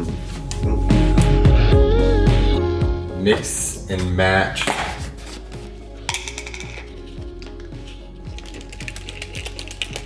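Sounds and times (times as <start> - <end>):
quiet background music: 0.0 - 10.0
plastic tubs clicking and rattling: 6.1 - 6.9.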